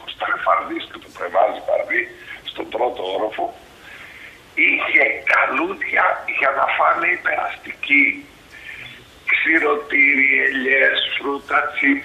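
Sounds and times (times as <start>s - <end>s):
man talking over video call: 0.0s - 3.6s, 4.6s - 12.0s.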